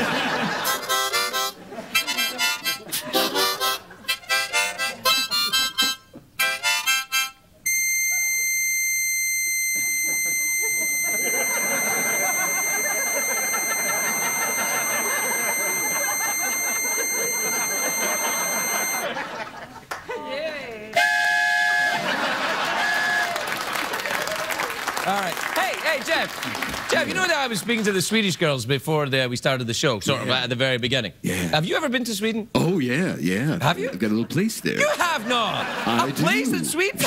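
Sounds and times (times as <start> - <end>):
harmonica playing: 0.3 - 19.1, 21.0 - 23.2
studio audience noise: 9.5 - 20.6, 21.9 - 28.7, 33.4 - 37.0.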